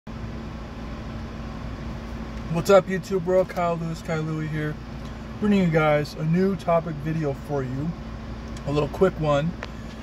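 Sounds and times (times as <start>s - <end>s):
car cabin hum and rumble: 0.1s - 10.0s
faint constant tone: 0.1s - 10.0s.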